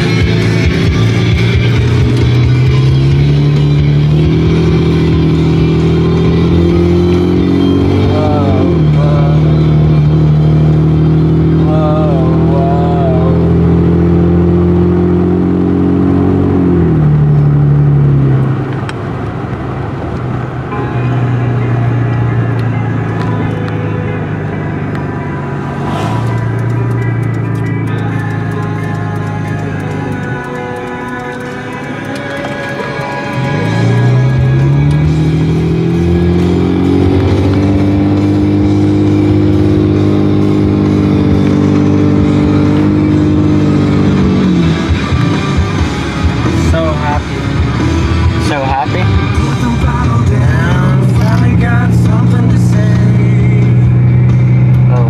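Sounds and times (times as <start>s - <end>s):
music playing: 0.0s - 18.4s, 20.6s - 55.0s
car engine from inside cabin: 0.0s - 55.0s.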